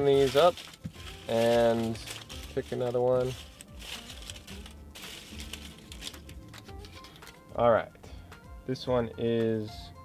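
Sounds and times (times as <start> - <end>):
paper slips rustling: 0.0 - 7.4
background music with low notes: 0.0 - 10.0.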